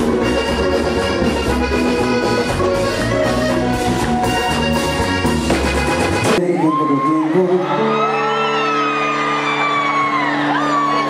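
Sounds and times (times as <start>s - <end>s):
live band music: 0.0s - 11.0s
crowd whooping and shouting: 3.5s - 4.9s, 6.4s - 11.0s.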